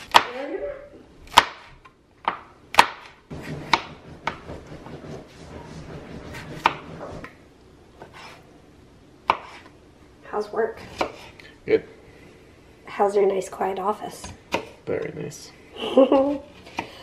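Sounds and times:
knife chopping on cutting board: 1.3 - 7.3, 8.0 - 8.4, 9.2 - 9.7, 10.8 - 11.4, 14.2 - 14.8.

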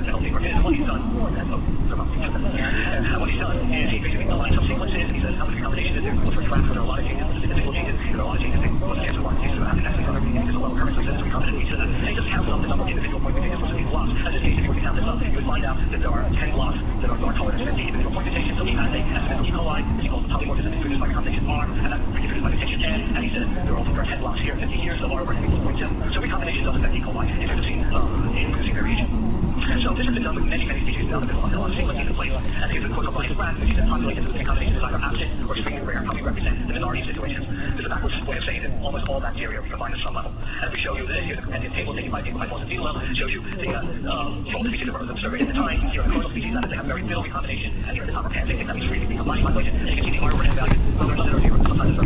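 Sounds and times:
dense low rumbling: 0.0 - 52.0
indistinct voices: 0.0 - 52.0.

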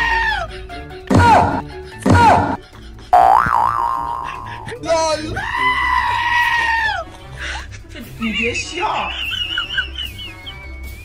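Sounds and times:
springy boing tone: 3.2 - 4.6.

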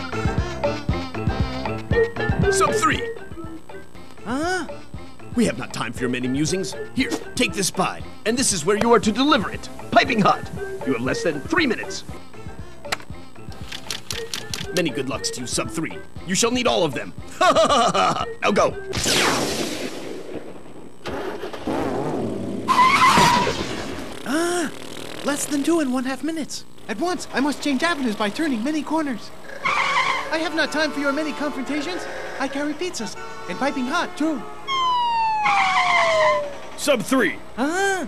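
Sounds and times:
cartoon car whoosh: 21.1 - 24.4, 34.7 - 36.6
tyre screech: 22.7 - 23.6, 29.4 - 30.6
horn with falling pitch: 29.6 - 36.6.

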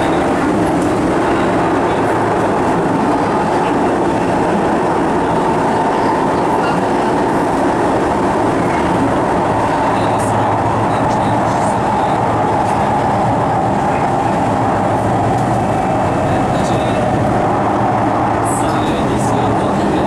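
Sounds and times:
constant hum: 0.0 - 20.0
train wheels rumbling on rail: 0.0 - 20.0.

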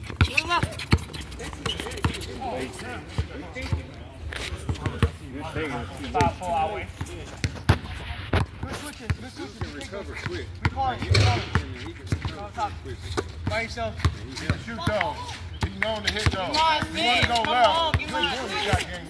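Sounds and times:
players' voices: 0.0 - 19.0
basketball bouncing on hard court: 10.6 - 12.4.

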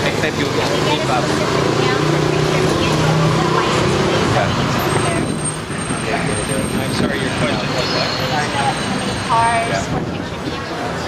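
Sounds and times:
indistinct voices: 0.0 - 11.0
traffic noise: 0.0 - 11.0
vehicle engine running: 0.0 - 11.0.

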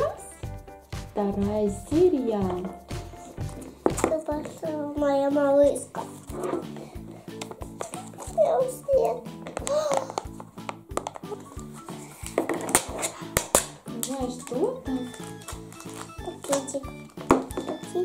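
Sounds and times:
light background music: 0.0 - 18.0
little girl's voice: 4.0 - 6.1, 8.2 - 10.2
cardboard box and foil opening: 15.0 - 16.7.

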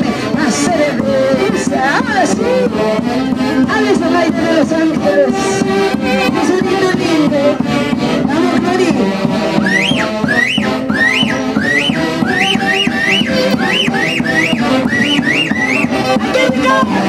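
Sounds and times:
folk band playing dance tune: 0.0 - 17.0.

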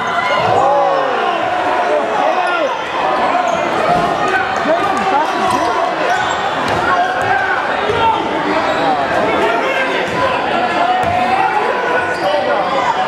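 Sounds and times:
spectators and players talking and shouting: 0.0 - 13.0.

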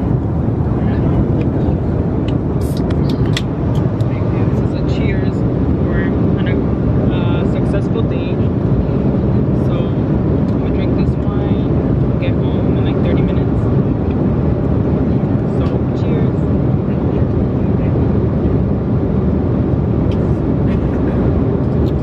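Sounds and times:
airliner cabin roar: 0.0 - 22.0.

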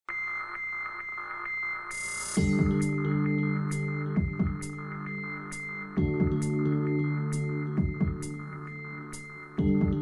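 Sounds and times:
high synthesizer tone: 0.1 - 10.0
soft electronic pulse: 0.1 - 10.0.

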